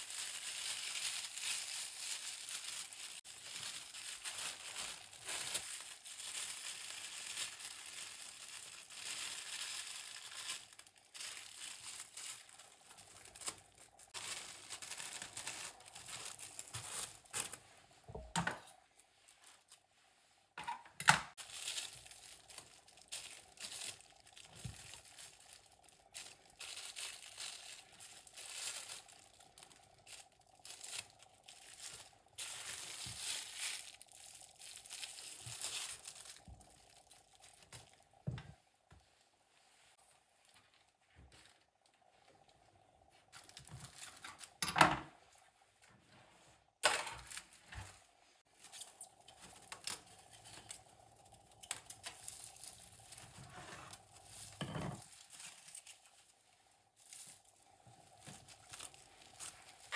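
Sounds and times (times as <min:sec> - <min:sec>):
sheet material crinkling: 0:00.0 - 0:20.2, 0:21.3 - 0:42.4, 0:43.1 - 0:44.6, 0:45.2 - 0:59.9.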